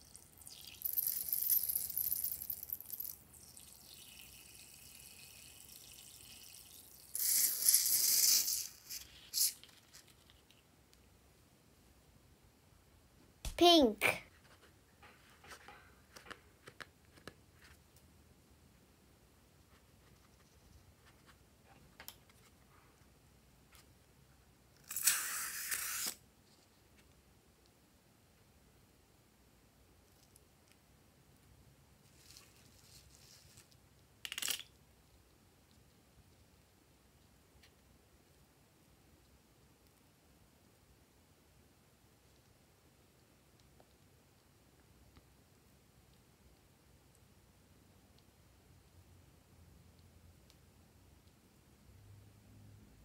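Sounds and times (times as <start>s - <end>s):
liquid squirting from balloon: 0.4s - 9.7s
liquid squirting with hiss: 6.1s - 9.6s.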